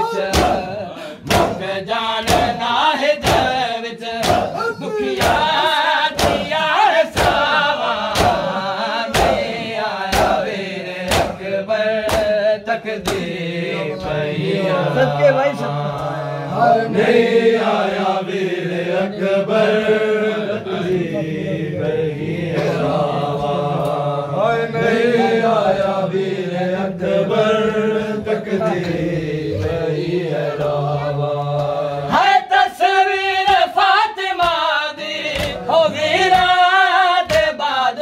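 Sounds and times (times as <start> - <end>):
men chanting a lament: 0.0 - 38.0.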